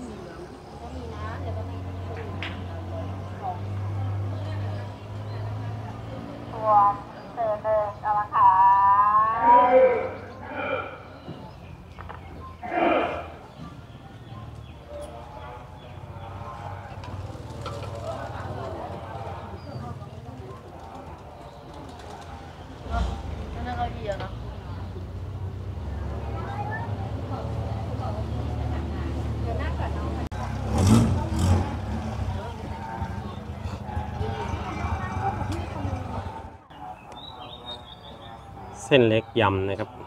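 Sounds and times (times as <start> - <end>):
engine humming: 0.0 - 38.8
indistinct voices: 0.0 - 40.0
loud voice-like call: 9.0 - 11.4, 12.6 - 13.5.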